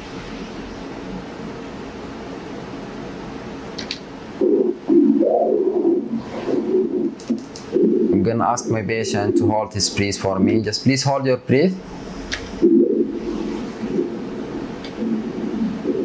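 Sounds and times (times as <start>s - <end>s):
soft steady hiss: 0.0s - 16.0s.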